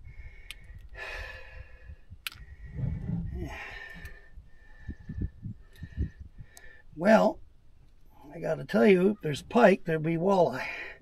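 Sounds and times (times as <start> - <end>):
man sighing and breathing out: 2.9 - 4.4.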